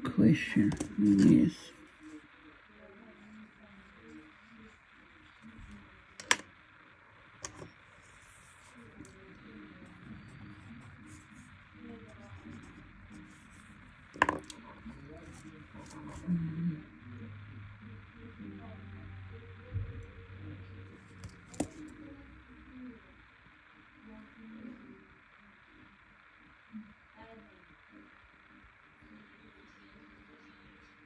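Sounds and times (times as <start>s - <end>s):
faint voices murmuring: 0.0s - 31.0s
pens clicking on wooden desk: 6.2s - 6.4s, 14.2s - 14.6s.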